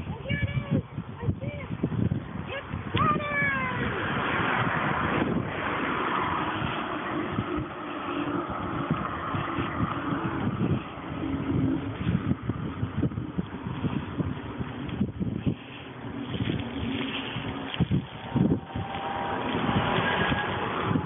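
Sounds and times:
bicycle road noise: 0.0 - 21.0
wind rushing over microphone: 0.0 - 21.0
passing traffic rushing: 1.8 - 21.0.

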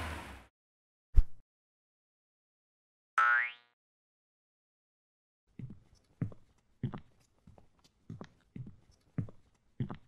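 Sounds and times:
cartoon boing: 3.2 - 3.8.

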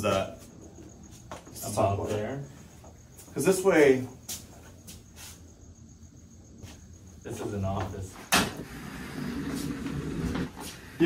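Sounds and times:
desk scraping across floor: 8.6 - 11.0.

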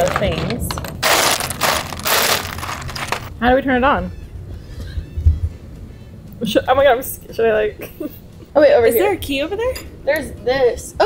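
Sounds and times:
lava rocks crunching and grinding: 1.0 - 3.3.

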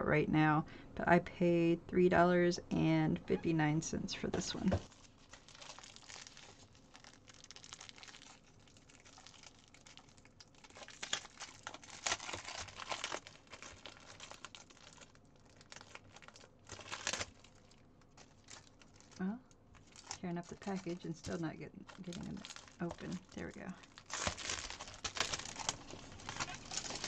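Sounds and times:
plastic packaging crinkling: 4.5 - 27.0.

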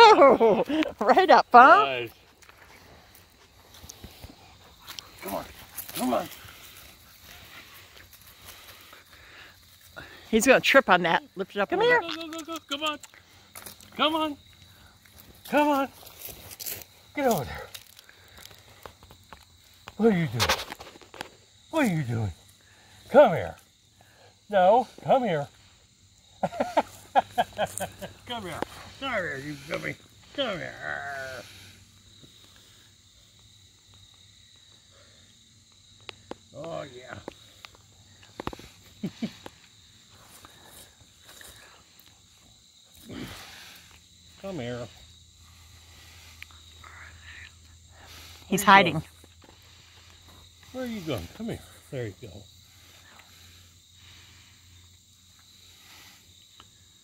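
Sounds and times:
high insect trill: 0.0 - 57.0.

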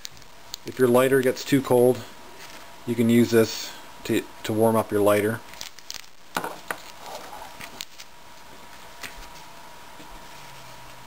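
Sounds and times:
plastic wrapper crinkling: 0.0 - 1.4, 5.5 - 9.4
objects knocking on wooden table: 6.4 - 6.8.

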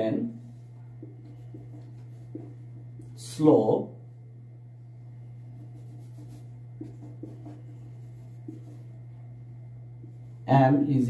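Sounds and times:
steady low hum: 0.0 - 11.0
marker scratching on whiteboard: 0.5 - 3.2, 5.4 - 9.0
light marker taps: 1.0 - 3.2, 6.2 - 7.7.

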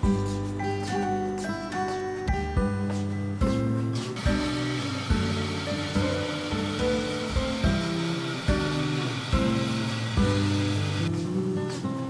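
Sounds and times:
plucked background music: 0.0 - 12.0
tap water running into can: 4.2 - 11.1.

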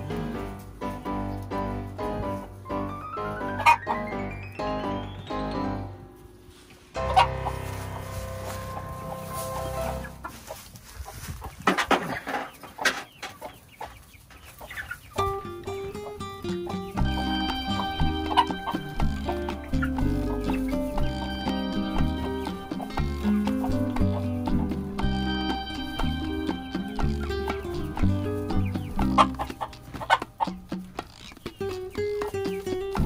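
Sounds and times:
background music: 0.0 - 10.4, 15.2 - 33.0
chickens clucking: 0.0 - 33.0.

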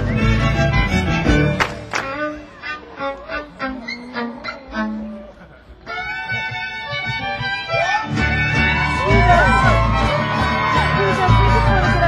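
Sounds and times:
live band instrumental music: 0.0 - 12.0.

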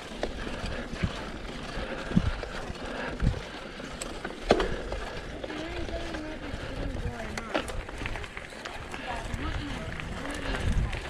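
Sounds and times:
bike rolling on gravel: 0.0 - 11.0
wind rumble on microphone: 4.8 - 11.0
people talking: 5.4 - 11.0.

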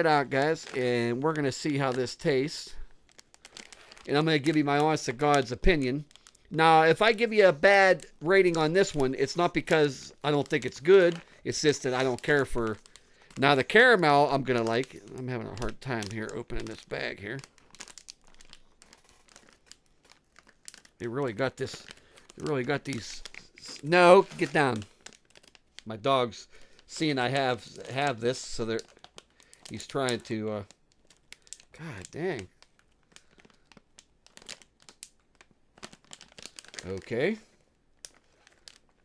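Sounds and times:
popcorn bag crinkling: 0.0 - 39.0.

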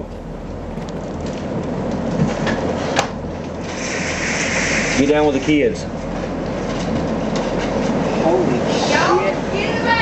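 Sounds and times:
tornado wind roaring: 0.0 - 10.0.

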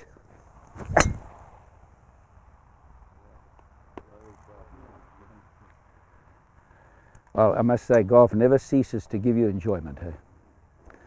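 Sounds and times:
golf club swish: 0.7 - 1.4
golf club striking ball: 0.8 - 1.4.

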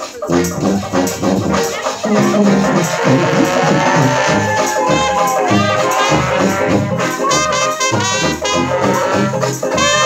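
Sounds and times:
bass notes beat: 0.0 - 10.0
jazz horn lines: 0.0 - 10.0.

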